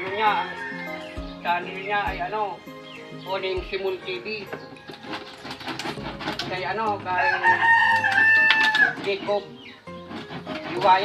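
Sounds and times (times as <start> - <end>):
rooster crowing: 0.0 - 1.4, 7.1 - 9.0.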